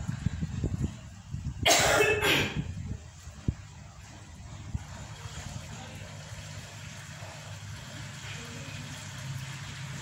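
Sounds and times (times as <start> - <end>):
woman coughing: 1.6 - 2.7.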